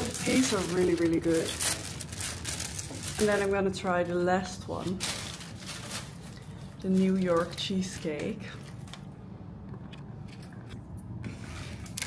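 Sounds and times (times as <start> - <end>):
woman speaking: 0.0 - 1.8, 3.1 - 5.2, 6.8 - 8.6
rustling and handling noise: 0.0 - 12.0.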